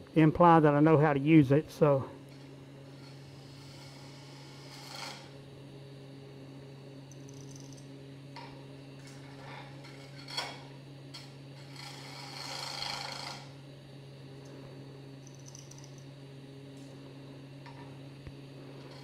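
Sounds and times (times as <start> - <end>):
wood lathe humming: 0.0 - 7.6, 8.3 - 19.0
turning tool scraping wood: 2.9 - 5.4, 11.5 - 13.6.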